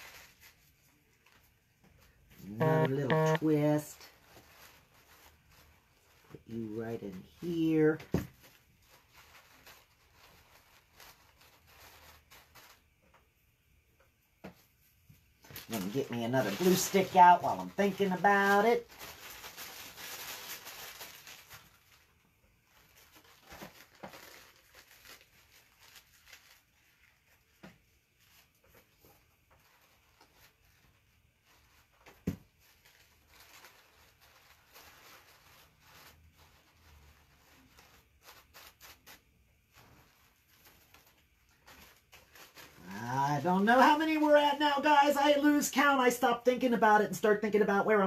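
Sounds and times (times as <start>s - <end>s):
paper rustling: 0.0s - 13.3s, 14.4s - 46.2s.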